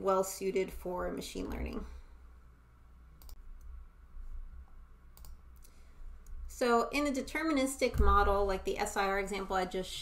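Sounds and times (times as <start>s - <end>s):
low steady hum: 0.0s - 10.0s
faint computer clicks: 5.2s - 6.4s.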